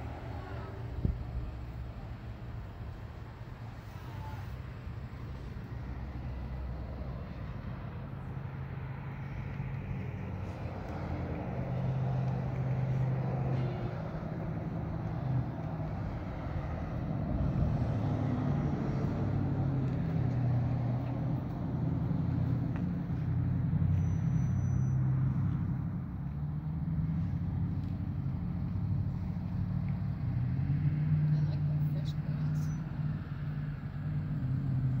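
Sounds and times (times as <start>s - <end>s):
road traffic passing: 0.0s - 35.0s.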